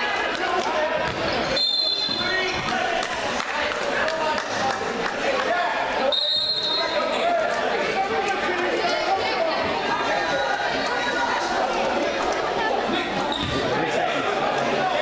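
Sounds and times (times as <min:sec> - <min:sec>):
voices echoing in a gym: 0:00.0 - 0:15.0
referee's whistle blast: 0:01.5 - 0:02.4, 0:06.1 - 0:07.0.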